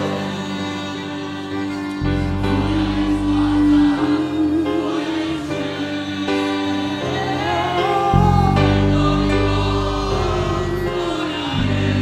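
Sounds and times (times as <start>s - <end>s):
band with violin and keyboard: 0.0s - 12.0s
group singing: 0.0s - 12.0s
deep sustained bass: 1.4s - 5.6s, 7.5s - 12.0s.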